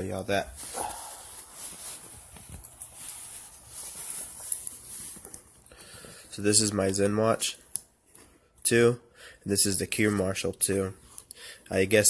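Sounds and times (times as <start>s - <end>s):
soft rustling: 0.0s - 8.8s.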